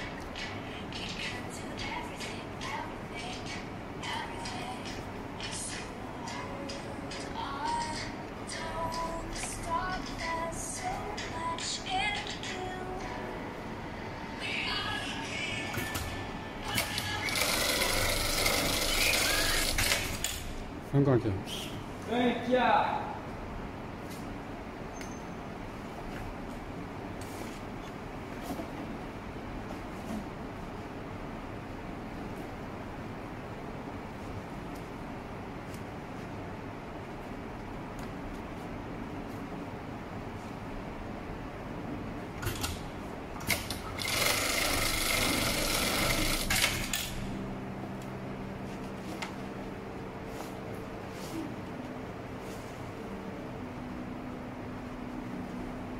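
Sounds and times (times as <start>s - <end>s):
sewing machine stitching: 16.7s - 20.3s, 43.5s - 47.1s.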